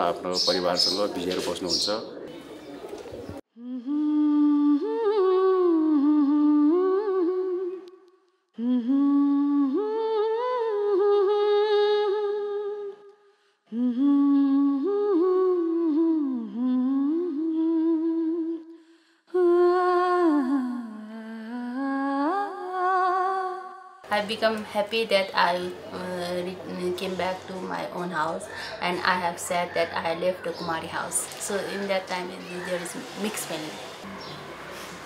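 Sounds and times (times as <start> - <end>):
woman humming: 3.5 - 7.9, 8.6 - 12.9, 13.7 - 18.7.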